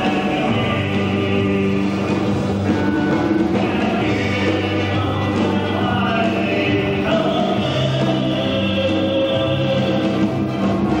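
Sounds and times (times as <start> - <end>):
accordion chords: 0.0 - 11.0
country band playing: 0.0 - 11.0.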